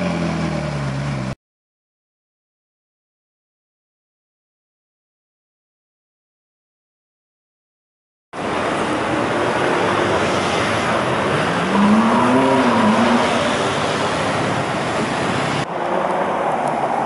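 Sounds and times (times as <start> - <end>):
city street traffic: 0.0 - 1.4, 8.4 - 17.0
engine accelerating past: 9.6 - 14.4.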